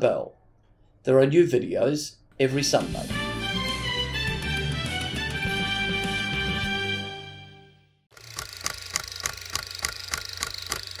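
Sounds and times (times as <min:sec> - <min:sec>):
film projector clicking: 0:08.1 - 0:11.0.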